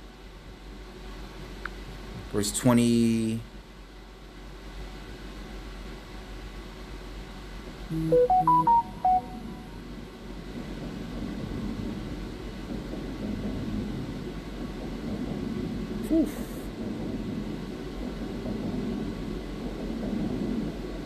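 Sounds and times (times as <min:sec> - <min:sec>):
smartphone notification chime: 0:07.9 - 0:09.8.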